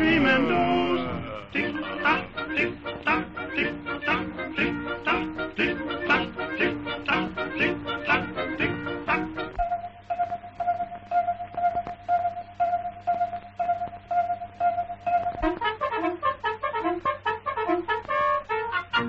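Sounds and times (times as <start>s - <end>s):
bouncy orchestral melody: 0.0s - 10.3s, 14.1s - 19.0s.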